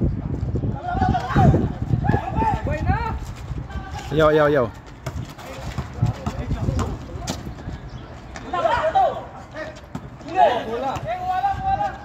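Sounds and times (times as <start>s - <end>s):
wind on microphone: 0.0s - 8.2s.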